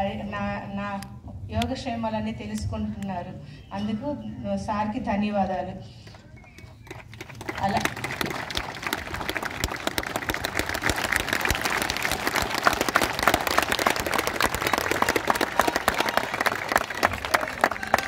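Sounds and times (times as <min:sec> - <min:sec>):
crowd applauding: 0:06.4 - 0:18.0.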